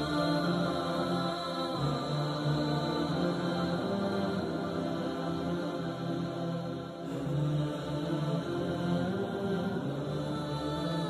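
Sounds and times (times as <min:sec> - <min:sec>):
slow wordless vocal humming: 0:00.0 - 0:11.0.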